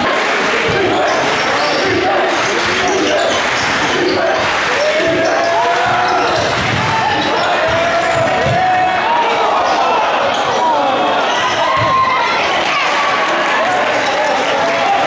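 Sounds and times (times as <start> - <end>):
crowd chatter and calls: 0.0 - 15.0.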